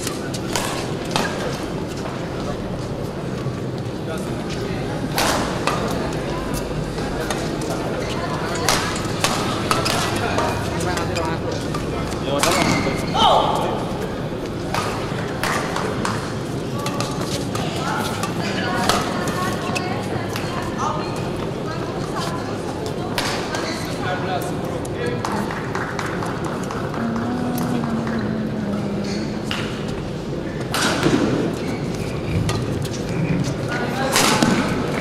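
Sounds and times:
racket striking shuttlecock: 0:00.0 - 0:01.6, 0:05.1 - 0:05.9, 0:08.6 - 0:10.6, 0:11.7 - 0:13.6, 0:34.1 - 0:35.0
murmur of voices: 0:00.0 - 0:35.0.

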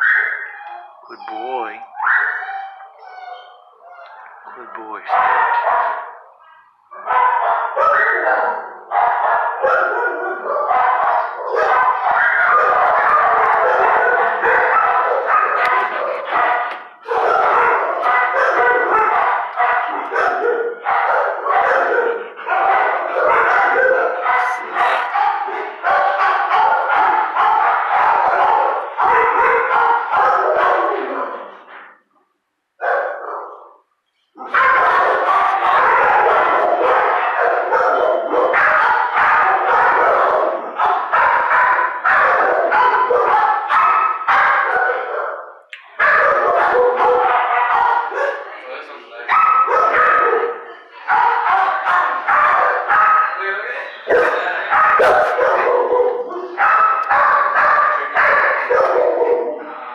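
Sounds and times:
dogs barking in chorus: 0:00.0 - 0:32.0, 0:32.8 - 0:59.9.

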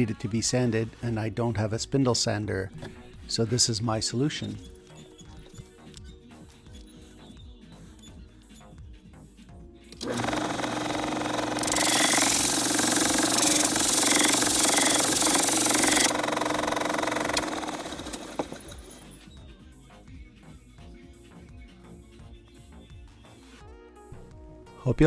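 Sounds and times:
background music: 0:00.0 - 0:25.0
drill press humming: 0:10.0 - 0:19.1.

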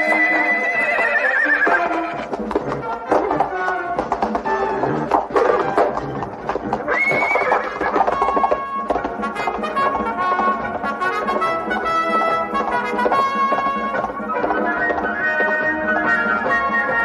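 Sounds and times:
hooves galloping: 0:00.0 - 0:17.0
horses neighing: 0:00.0 - 0:17.0
orchestral music with brass: 0:00.0 - 0:17.0.

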